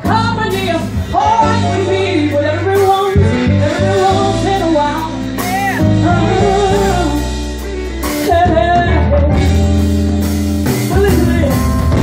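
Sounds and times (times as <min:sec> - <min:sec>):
woman singing into microphone: 0:00.0 - 0:07.4, 0:08.1 - 0:09.8, 0:10.9 - 0:12.0
drums: 0:00.0 - 0:12.0
electric bass: 0:00.0 - 0:12.0.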